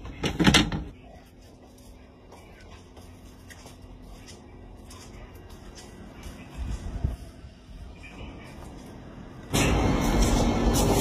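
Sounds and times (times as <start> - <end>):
loud rumble with low hum: 3.8 - 11.0.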